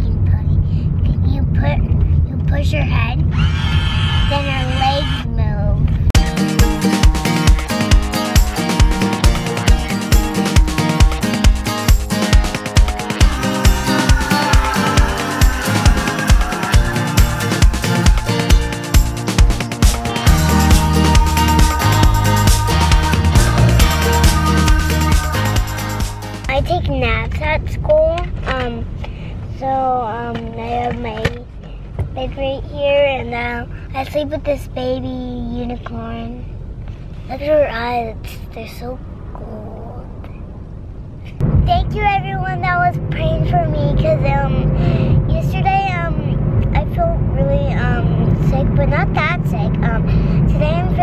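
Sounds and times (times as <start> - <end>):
girl talking: 0.0 - 3.3, 4.2 - 6.0, 26.4 - 31.5, 32.1 - 36.5, 37.3 - 40.2, 41.3 - 51.0
car hum: 0.0 - 51.0.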